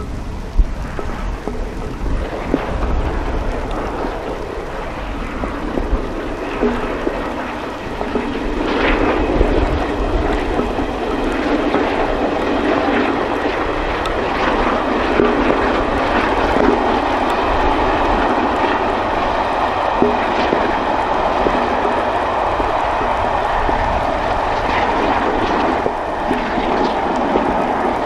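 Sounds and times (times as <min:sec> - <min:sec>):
distant steam train rushing: 0:00.0 - 0:28.0.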